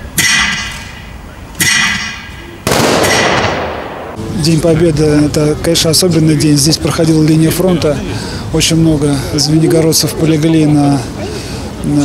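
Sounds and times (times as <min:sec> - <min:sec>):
loud bangs with echoing decay: 0:02.6 - 0:04.3.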